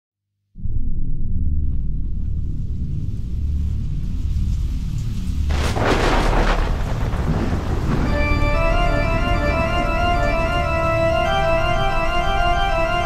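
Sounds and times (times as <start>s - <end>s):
deep pulsing rumble: 0.6s - 12.9s
thunder-like crash: 5.5s - 11.3s.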